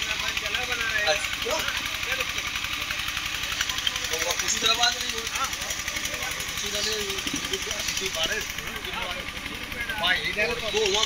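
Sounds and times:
fast low rattle: 0.0 - 11.0.

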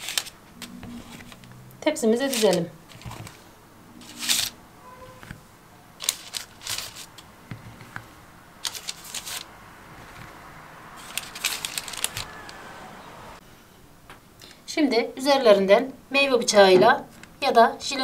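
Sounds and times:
baking parchment rustling: 0.0 - 4.6, 5.3 - 12.7.

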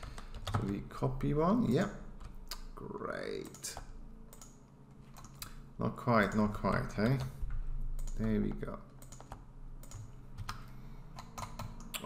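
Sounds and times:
low steady hum: 0.0 - 12.0
keyboard and mouse clicks: 3.4 - 5.6, 7.9 - 12.0.

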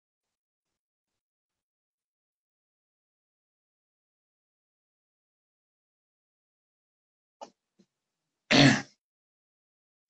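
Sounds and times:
woman clearing her throat: 8.5 - 9.0.

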